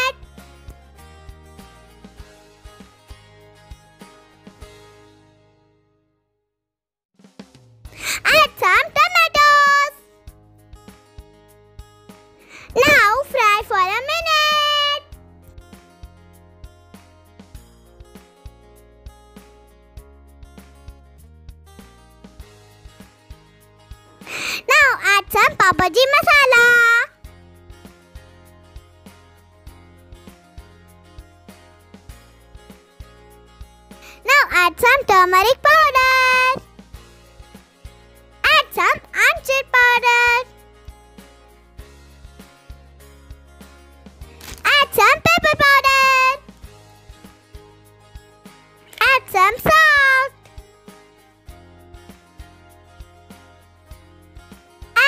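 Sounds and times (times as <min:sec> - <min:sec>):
background music: 0:00.0 - 0:06.0, 0:07.3 - 0:55.0
child singing wordlessly: 0:12.8 - 0:15.0.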